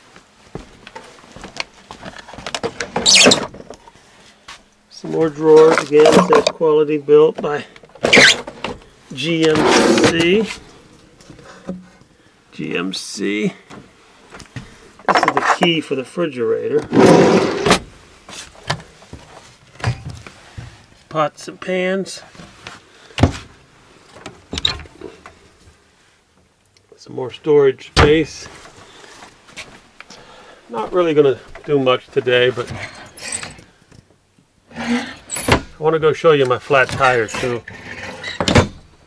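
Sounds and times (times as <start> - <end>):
wooden drawer sliding: 9.5 - 10.4, 16.8 - 17.8.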